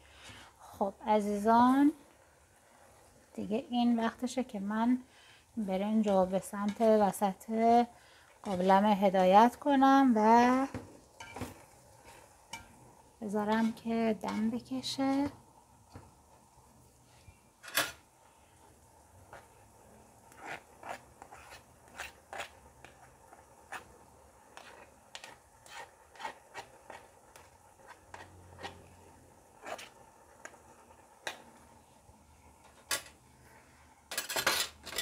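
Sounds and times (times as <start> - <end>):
metal spoon scraping in pot: 20.3 - 23.9, 24.5 - 30.0
utensils clattering: 34.1 - 35.0.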